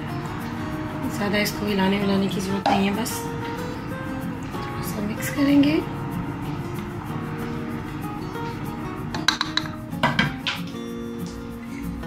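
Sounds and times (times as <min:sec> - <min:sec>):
background music: 0:00.0 - 0:12.0
ladle clinking against pot: 0:02.6 - 0:02.9, 0:09.2 - 0:10.6.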